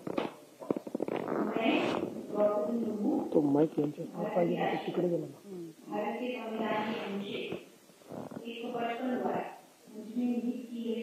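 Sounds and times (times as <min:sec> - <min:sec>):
indistinct talking: 0:01.4 - 0:11.0.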